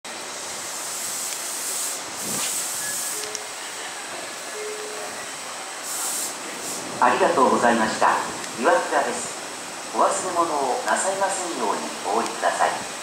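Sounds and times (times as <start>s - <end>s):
steady high hiss: 0.1s - 13.0s
compressed air hiss bursts: 0.6s - 3.3s, 5.8s - 6.9s
electric train braking: 0.7s - 3.6s.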